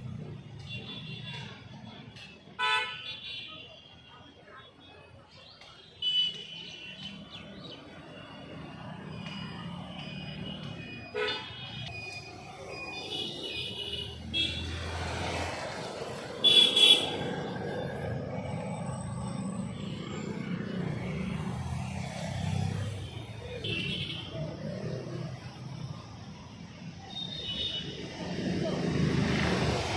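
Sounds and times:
road traffic rumble: 0:00.0 - 0:29.9
vehicle horns: 0:00.5 - 0:01.6, 0:02.2 - 0:03.9, 0:05.9 - 0:07.2, 0:10.0 - 0:12.0, 0:12.8 - 0:18.8, 0:23.5 - 0:24.5, 0:27.1 - 0:28.1.

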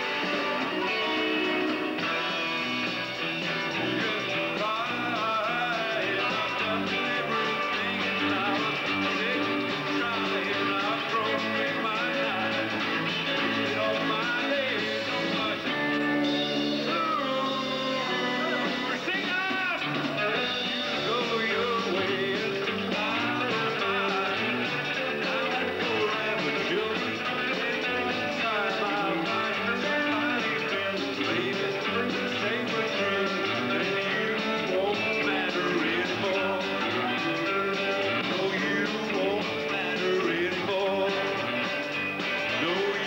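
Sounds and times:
man singing: 0:00.0 - 0:02.7, 0:03.5 - 0:43.0
rock band playing: 0:00.0 - 0:43.0.

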